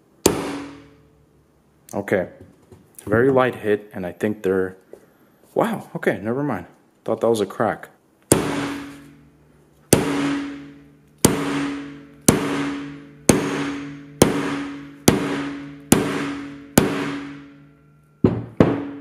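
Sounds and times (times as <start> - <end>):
hammer striking metal case: 0.3 - 0.9, 8.3 - 9.1, 9.9 - 19.0.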